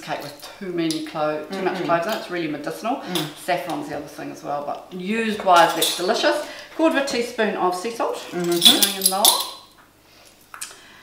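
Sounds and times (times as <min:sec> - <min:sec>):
person speaking: 0:01.3 - 0:06.9
metal spoon clinking on dish: 0:08.4 - 0:09.7.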